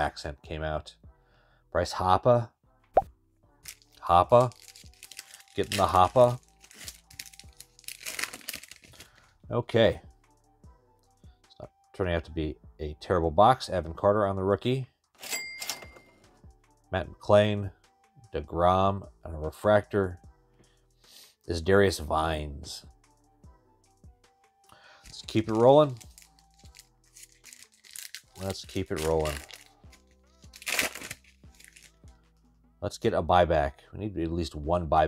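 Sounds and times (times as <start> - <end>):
faint background music: 0.0 - 35.0
foil wrapper crinkling: 3.6 - 9.2, 25.1 - 32.0
cash register ka-ching: 15.2 - 16.2.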